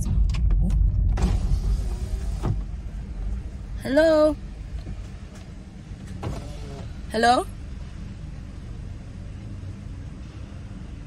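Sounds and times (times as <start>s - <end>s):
low car cabin rumble: 0.0s - 11.0s
electric window motor: 6.0s - 7.1s.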